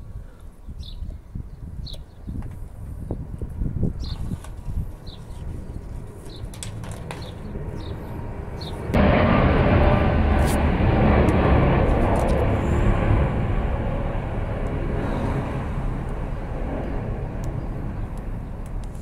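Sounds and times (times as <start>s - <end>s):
passing engine rumble: 5.5s - 19.0s.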